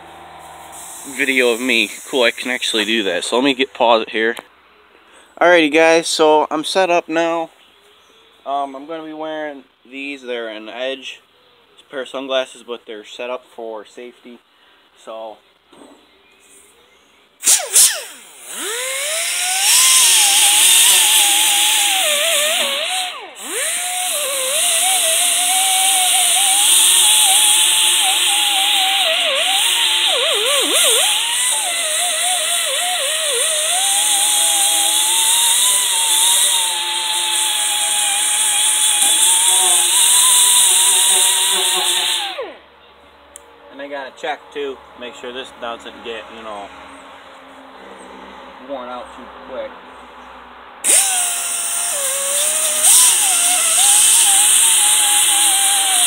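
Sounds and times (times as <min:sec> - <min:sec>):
hiss of exhaust air: 0:00.4 - 0:02.8
die grinder grinding metal: 0:17.4 - 0:42.6, 0:50.8 - 0:56.0.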